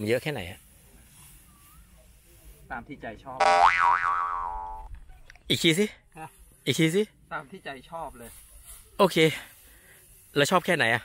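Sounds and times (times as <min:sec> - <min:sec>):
cartoon boing: 0:03.4 - 0:04.9.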